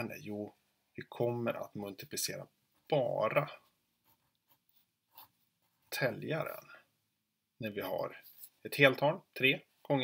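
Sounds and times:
pen scratching on paper: 0:04.0 - 0:05.9.

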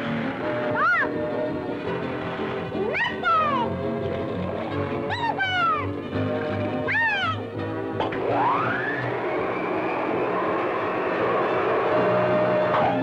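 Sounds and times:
orchestral cartoon music: 0:00.0 - 0:13.0
whistle-like pitched glide: 0:08.1 - 0:13.0.

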